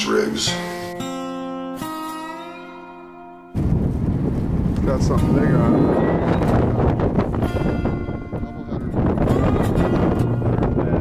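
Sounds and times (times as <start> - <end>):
background music: 0.0 - 3.6, 4.9 - 11.0
wind buffeting microphone: 3.6 - 11.0.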